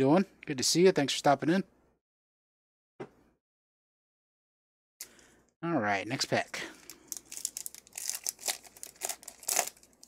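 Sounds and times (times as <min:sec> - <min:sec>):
foil wrapper crinkling: 0:06.8 - 0:10.0.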